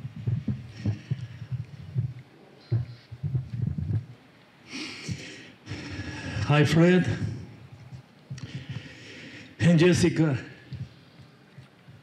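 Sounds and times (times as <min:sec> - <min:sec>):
microphone handling thumps: 0:00.0 - 0:04.2.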